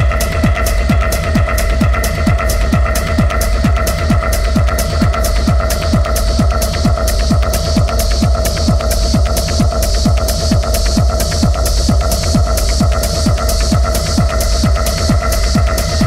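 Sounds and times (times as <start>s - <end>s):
hi-hats ticking: 0.0s - 16.0s
techno kick drum: 0.0s - 16.0s.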